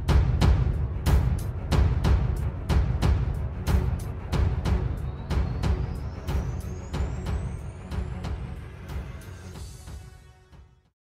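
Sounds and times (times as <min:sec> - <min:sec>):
deep bass: 0:00.0 - 0:09.8.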